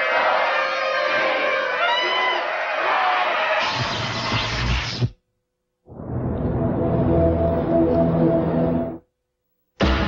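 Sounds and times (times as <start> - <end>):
crowd noise: 0.0 - 4.4
soundtrack music: 5.9 - 9.0.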